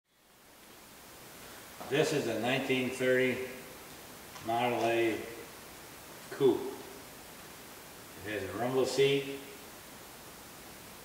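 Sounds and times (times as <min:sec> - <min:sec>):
room tone hiss: 0:00.1 - 0:11.0
man talking: 0:01.8 - 0:03.7, 0:04.4 - 0:05.5, 0:06.3 - 0:07.0, 0:08.2 - 0:09.6.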